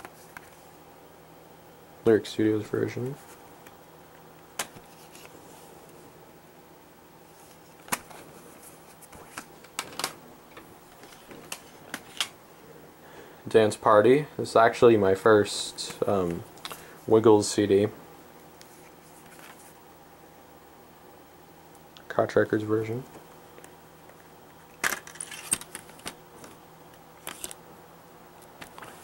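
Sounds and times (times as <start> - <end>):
plastic cd cases clicking: 4.6 - 5.4, 7.8 - 8.2, 9.0 - 12.4, 24.7 - 27.6, 28.4 - 29.0.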